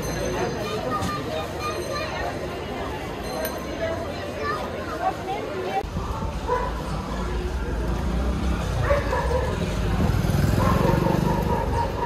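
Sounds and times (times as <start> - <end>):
passing traffic rumble: 5.2 - 12.0.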